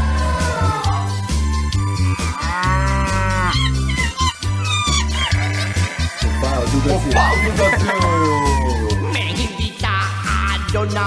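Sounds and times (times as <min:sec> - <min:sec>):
bass-heavy music beat: 0:00.0 - 0:11.0
animal call sound effect: 0:02.4 - 0:09.1.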